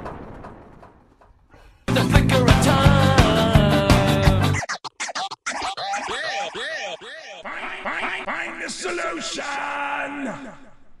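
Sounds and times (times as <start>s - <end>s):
overlapping voice-like calls: 4.2s - 9.4s.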